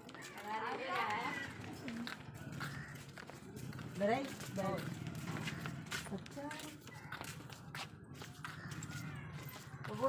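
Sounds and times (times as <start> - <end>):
faint voices: 0.0 - 10.0
footsteps on brick paving: 0.0 - 10.0.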